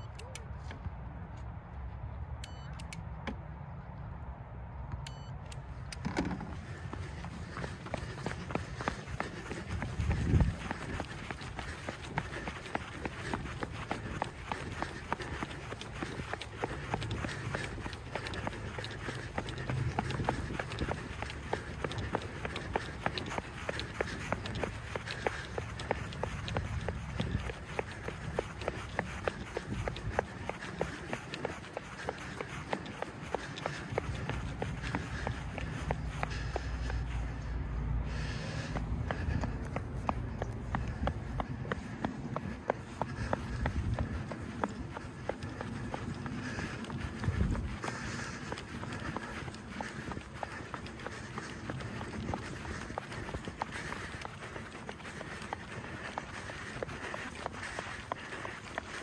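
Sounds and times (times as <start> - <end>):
running footsteps on a track: 0.0 - 59.0.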